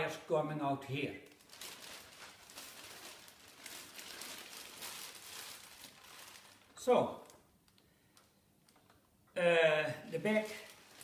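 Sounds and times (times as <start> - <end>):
man speaking: 0.0 - 1.2, 6.8 - 7.3, 9.4 - 10.8
plastic bag crinkling: 1.2 - 9.0, 10.1 - 11.0.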